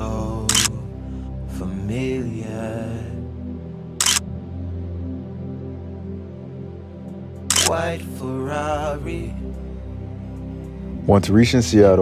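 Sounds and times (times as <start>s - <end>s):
background music with low tones: 0.0s - 12.0s
camera shutter click: 0.5s - 0.7s, 4.0s - 4.2s, 7.5s - 7.8s.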